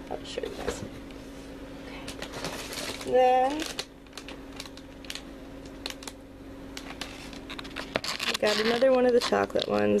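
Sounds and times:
faint steady hum: 0.0s - 10.0s
plastic packaging crinkling: 2.1s - 10.0s.

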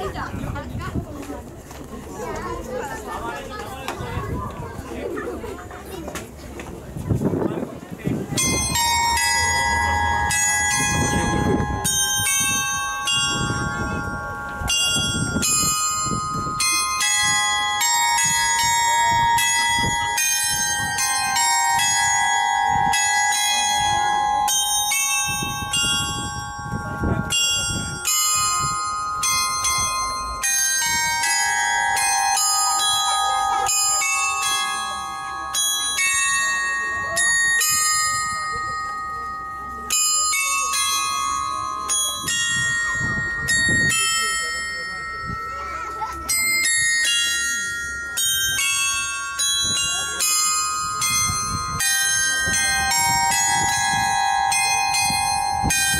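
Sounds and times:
metal bells playing a tune: 0.0s - 55.9s.

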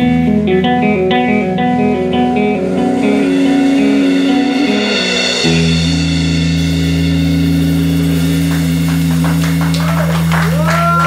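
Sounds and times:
bass and electric guitar chord: 0.0s - 11.0s.

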